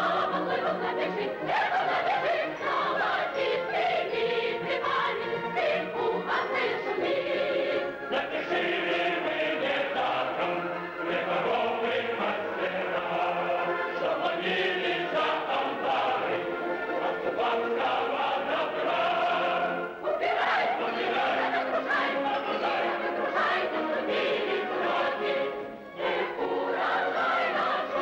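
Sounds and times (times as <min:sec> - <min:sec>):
choir singing: 0:00.0 - 0:28.0.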